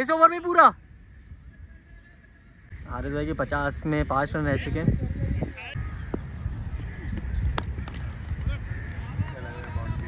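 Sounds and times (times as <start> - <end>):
wind rumble on microphone: 2.7 - 10.0.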